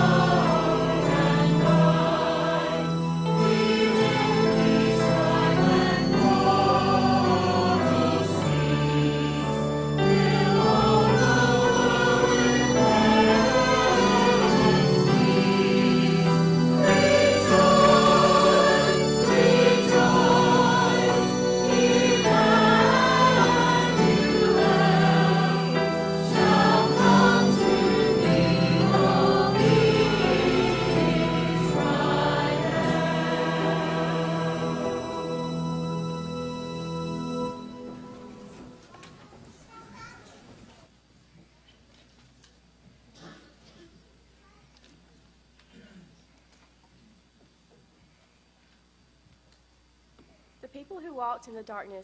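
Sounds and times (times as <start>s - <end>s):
choir and congregation singing hymn: 0.0s - 38.8s.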